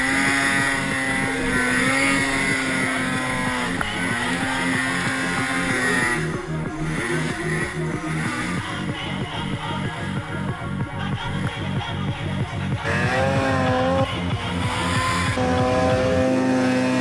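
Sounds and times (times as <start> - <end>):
snowmobile engine at high revs: 0.0 - 17.0.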